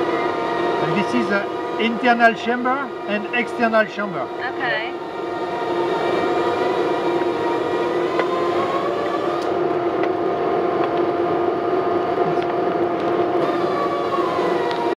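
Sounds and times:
machine drone: 0.0s - 15.0s.

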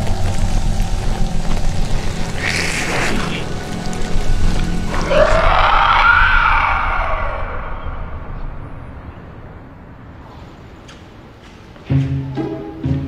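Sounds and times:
film score music: 0.0s - 13.0s
growl-like sound effect: 2.4s - 3.7s, 4.9s - 9.0s.

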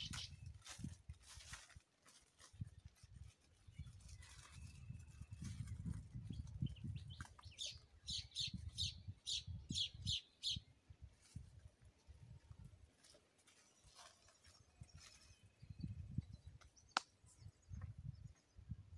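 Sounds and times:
bird chirping: 0.0s - 0.4s, 6.2s - 10.8s.

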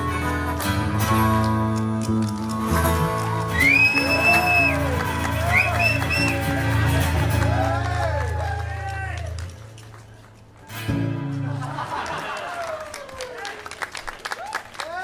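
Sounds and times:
rock and roll band playing: 0.0s - 8.7s
harmonica wailing: 2.8s - 6.8s.

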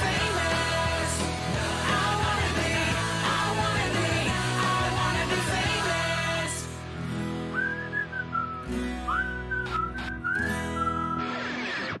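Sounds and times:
whistled melody: 7.4s - 11.5s.

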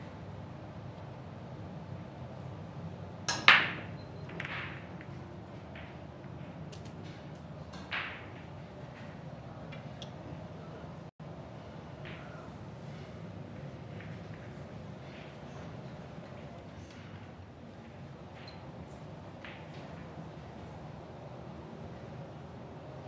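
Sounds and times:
low hall hum: 0.0s - 23.0s
billiard balls clicking together: 3.3s - 9.1s
cue ball cracking into racked balls: 3.3s - 9.2s.

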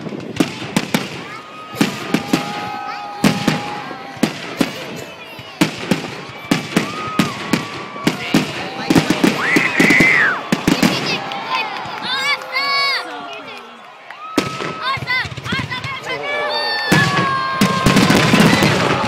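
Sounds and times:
fireworks bangs and pops: 0.0s - 12.4s, 14.3s - 16.0s, 16.9s - 19.0s.

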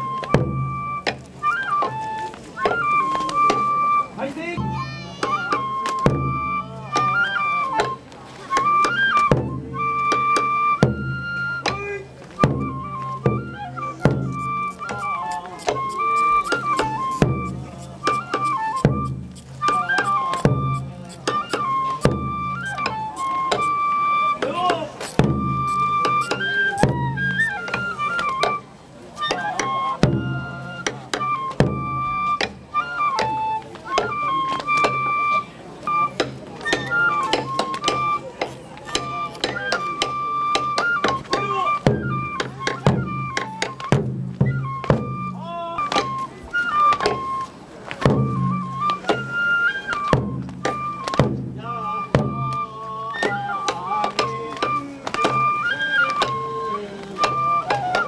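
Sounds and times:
drum beats and sharp strikes: 0.0s - 52.6s, 53.2s - 58.0s
bamboo flute melody: 0.0s - 58.0s.

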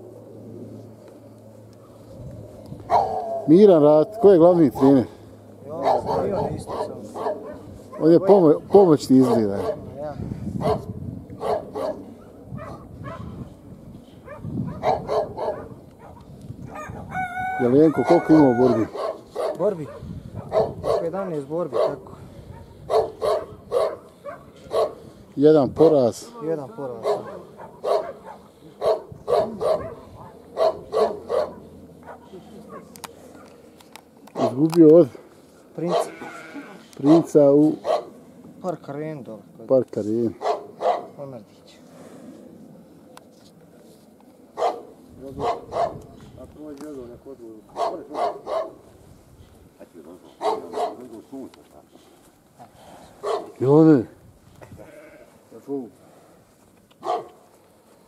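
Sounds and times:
dog barking: 2.9s - 3.5s, 5.8s - 8.2s, 9.3s - 9.9s, 10.6s - 13.4s, 14.2s - 17.3s, 18.8s - 25.1s, 27.0s - 33.5s, 35.9s - 36.2s, 37.1s - 38.1s, 40.4s - 41.2s, 44.6s - 46.0s, 47.7s - 48.8s, 50.4s - 51.1s, 53.2s - 53.6s, 57.0s - 57.4s
dog drawn-out call: 2.9s - 4.3s, 5.8s - 8.1s, 14.2s - 21.1s, 21.7s - 25.1s, 27.0s - 33.5s, 35.8s - 38.2s, 40.4s - 41.1s, 57.0s - 57.4s.

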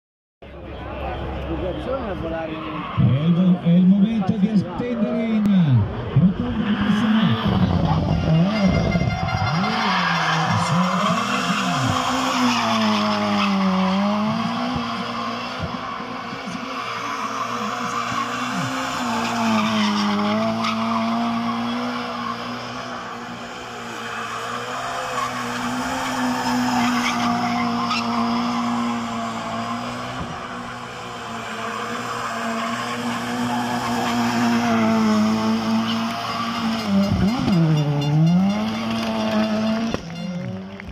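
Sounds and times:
car engine at high revs: 1.1s - 40.9s
tyres squealing: 24.0s - 39.8s.

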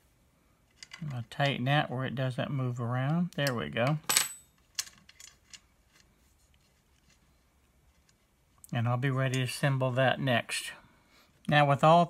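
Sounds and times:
hex key clinking on table: 4.0s - 5.4s.

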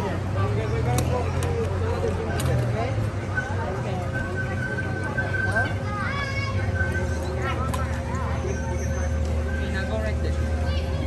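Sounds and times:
distant children calling and chattering: 0.0s - 11.0s
low outdoor hum: 0.0s - 11.0s.

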